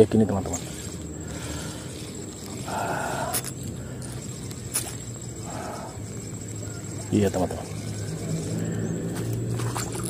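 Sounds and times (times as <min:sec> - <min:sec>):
spinning reel noise: 0:00.0 - 0:10.0.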